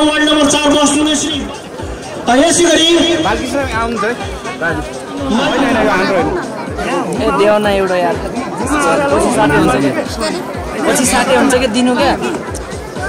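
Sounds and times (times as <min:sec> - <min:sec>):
background music with low beat: 0:00.0 - 0:13.0
people talking: 0:02.3 - 0:13.0.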